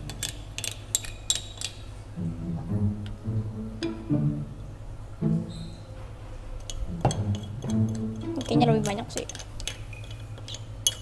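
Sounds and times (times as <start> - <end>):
soft background music: 2.0 - 11.0
spoon clinking ceramic bowl: 6.6 - 11.0.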